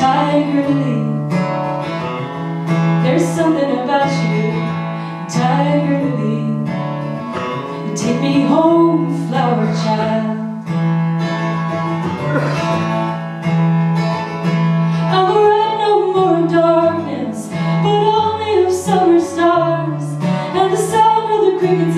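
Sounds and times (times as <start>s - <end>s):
woman singing: 0.0s - 1.6s, 3.0s - 10.6s, 15.0s - 21.9s
acoustic guitar strumming: 0.0s - 21.9s.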